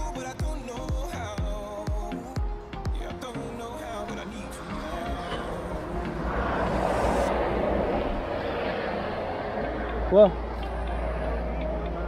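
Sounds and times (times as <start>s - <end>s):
wind and road noise: 2.4s - 12.0s.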